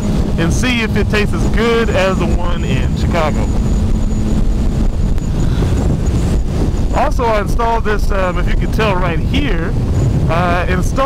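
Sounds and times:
motorcycle engine cruising: 0.0 - 11.0
wind rushing over microphone: 0.0 - 11.0.

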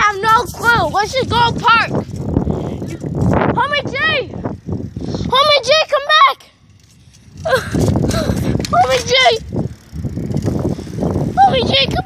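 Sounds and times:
wind rumble on microphone: 0.0 - 5.9, 6.6 - 12.0
bicycle riding noise: 0.0 - 12.0.

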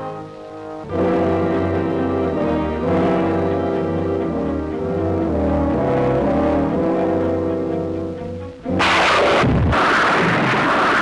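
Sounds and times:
rocket exhaust blast: 8.7 - 11.0.

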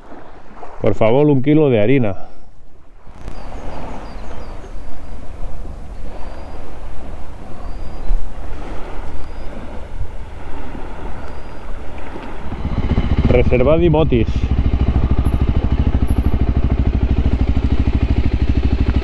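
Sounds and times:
wind buffeting microphone: 2.6 - 19.0
motorcycle engine idling: 9.9 - 19.0.

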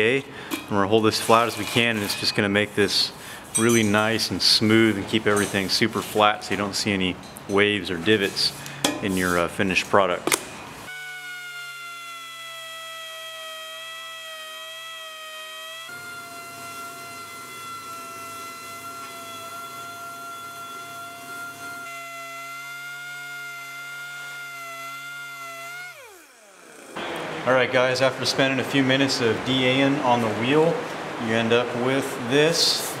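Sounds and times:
rough grinding noise: 1.1 - 3.0
pneumatic sander whining: 10.2 - 27.4.

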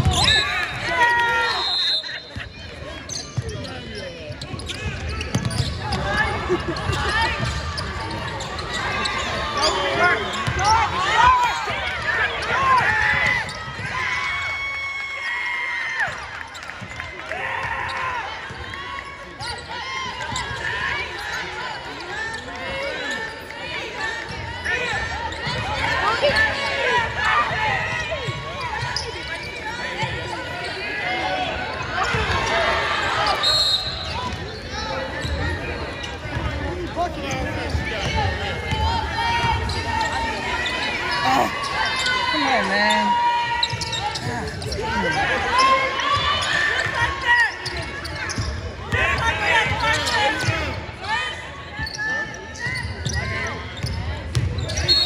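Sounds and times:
sneakers squeaking: 0.0 - 15.3, 19.3 - 55.0
players calling out: 17.3 - 54.9.

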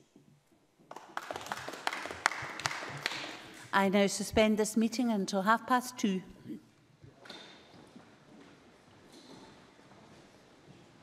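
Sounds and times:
scattered applause: 0.9 - 3.6.

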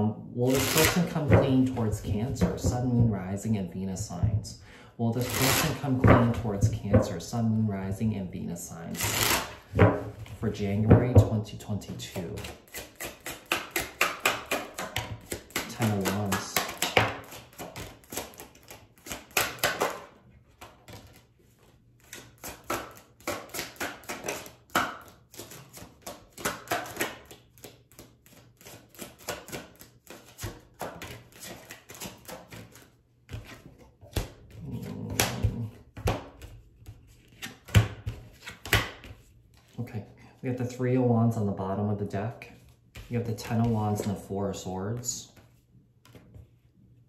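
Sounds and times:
cards being shuffled: 0.5 - 3.1, 5.2 - 7.0, 8.8 - 39.8, 42.6 - 44.3, 44.9 - 46.5.

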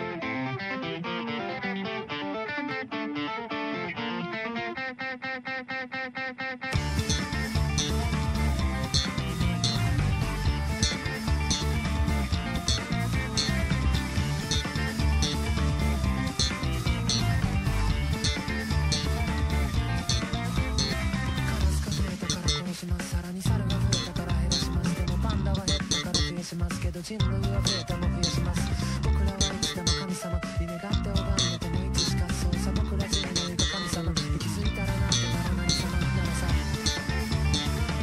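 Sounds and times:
electric bass guitar: 0.0 - 38.0
rock backing track: 0.0 - 38.0.

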